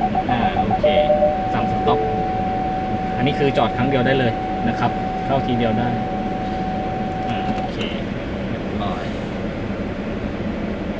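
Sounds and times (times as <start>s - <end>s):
car engine rumble inside cabin: 0.0s - 10.9s.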